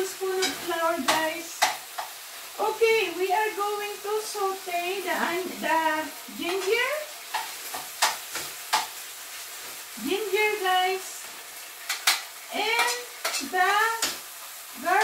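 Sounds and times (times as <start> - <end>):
woman talking: 0.0 - 1.6, 2.6 - 7.1, 10.0 - 11.2, 12.5 - 14.1, 14.8 - 15.0
meat sizzling in a pan: 0.0 - 15.0.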